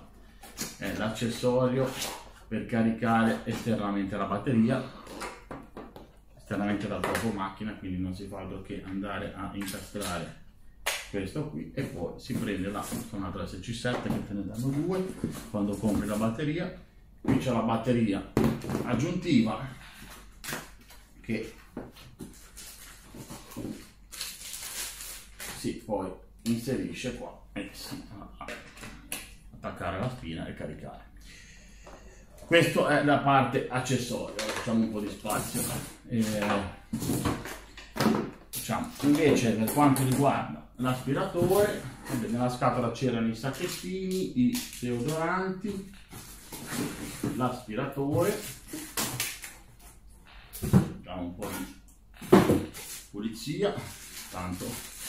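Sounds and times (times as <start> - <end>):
cardboard packaging rustling: 22.1 - 25.7, 53.7 - 55.0
plastic wrapping rustling: 22.1 - 25.7, 43.4 - 49.8, 52.5 - 55.0
plastic wrapping crinkling: 22.2 - 25.7, 53.7 - 55.0
cardboard scraping: 45.8 - 47.5.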